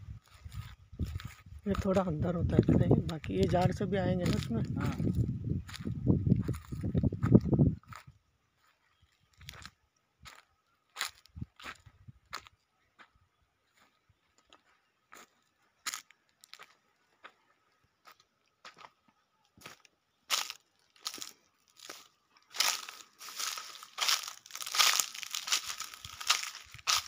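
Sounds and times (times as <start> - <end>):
footsteps crunching on dry leaves: 0.1 - 13.1, 14.6 - 16.8, 19.6 - 27.0.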